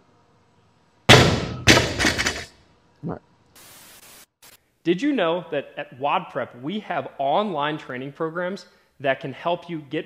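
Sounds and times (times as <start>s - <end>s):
barbell crashing on rubber floor: 1.1s - 2.5s
plates bouncing and rattling: 1.7s - 2.5s
static hiss: 3.5s - 4.6s.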